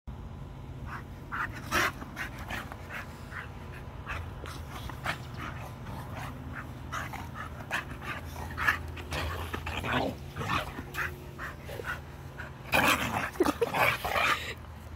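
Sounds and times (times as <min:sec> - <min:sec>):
dogs snorting and scuffling: 0:00.9 - 0:14.9.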